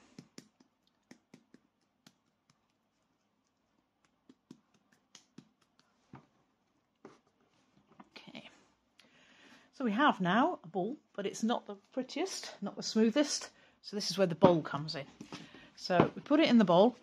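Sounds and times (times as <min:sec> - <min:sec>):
hands patting clay ball: 0:00.0 - 0:07.4.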